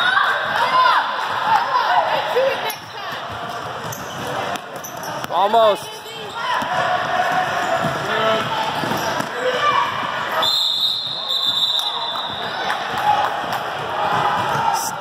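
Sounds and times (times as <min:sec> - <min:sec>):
crowd voices echoing: 0:00.0 - 0:15.0
ball bouncing on indoor court: 0:02.6 - 0:14.9.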